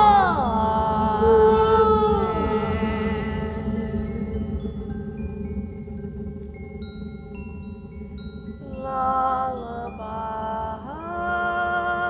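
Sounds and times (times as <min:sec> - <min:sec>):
held voice-like note: 0:00.0 - 0:04.4
low electronic drone: 0:00.0 - 0:11.6.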